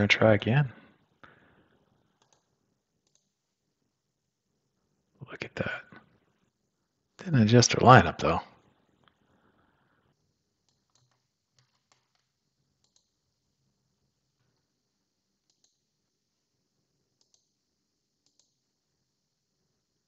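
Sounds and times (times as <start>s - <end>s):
faint computer mouse clicks: 2.2s - 3.3s, 10.6s - 13.2s, 15.4s - 15.8s, 17.2s - 17.5s, 18.2s - 18.6s.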